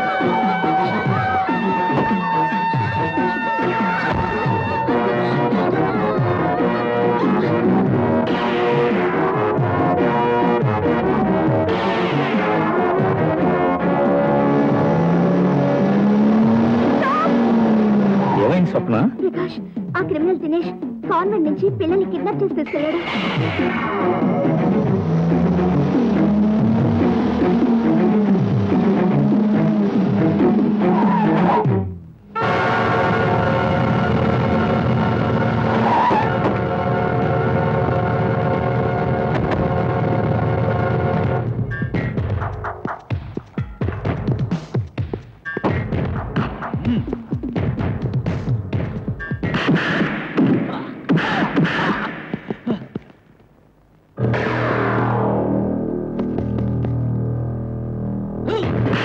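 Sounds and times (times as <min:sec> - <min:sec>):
dramatic film score: 0:00.0 - 0:42.9
car engine: 0:07.1 - 0:19.0, 0:23.3 - 0:41.7
woman's voice: 0:19.2 - 0:23.1
tyre noise: 0:41.6 - 0:53.6, 0:55.8 - 0:57.4.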